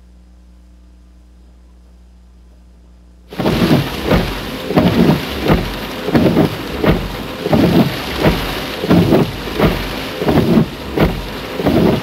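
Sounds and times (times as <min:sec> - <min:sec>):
heavy rain on windshield: 0:03.3 - 0:12.0
windshield wipers sweeping: 0:03.3 - 0:12.0.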